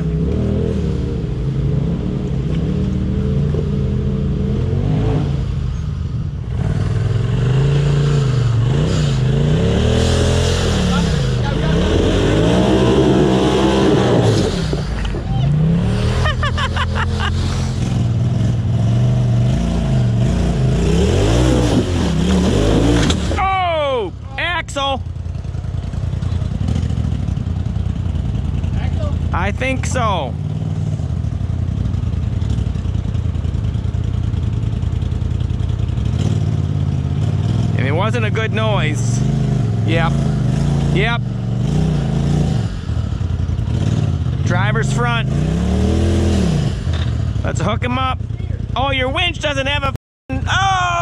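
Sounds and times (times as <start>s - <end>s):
off-road vehicle engine revving: 0.0s - 51.0s
person shouting: 15.2s - 15.7s, 23.4s - 25.0s, 50.3s - 51.0s.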